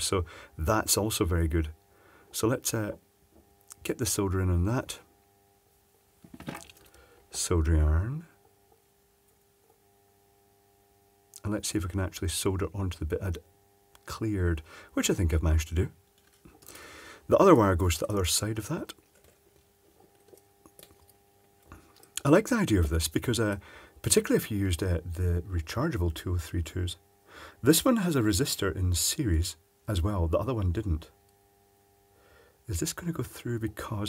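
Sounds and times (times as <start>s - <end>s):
faint steady hum: 0.0s - 34.0s
light ticks of small parts handled: 16.0s - 16.7s.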